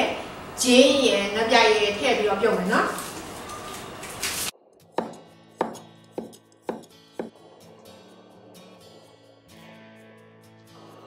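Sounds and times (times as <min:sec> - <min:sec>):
cleaver chopping on wooden board: 0:05.0 - 0:07.4.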